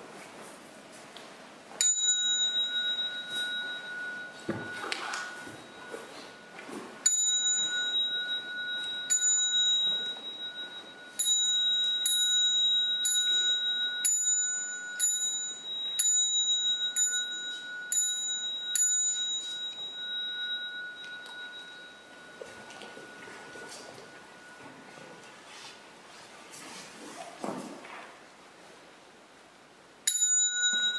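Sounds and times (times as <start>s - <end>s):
small bell ringing: 1.8s - 25.3s, 30.1s - 30.9s
faint high tone: 2.2s - 11.2s, 19.6s - 25.5s.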